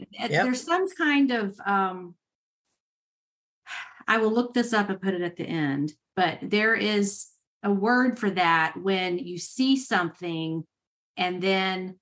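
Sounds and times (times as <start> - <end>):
person speaking: 0.0 - 0.9.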